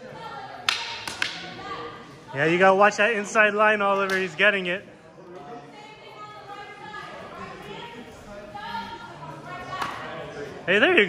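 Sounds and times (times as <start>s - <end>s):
faint background talking: 0.0s - 11.0s.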